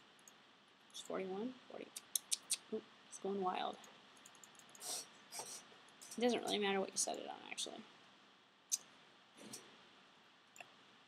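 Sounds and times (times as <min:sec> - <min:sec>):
computer mouse clicks: 0:00.2 - 0:00.4, 0:03.8 - 0:04.9.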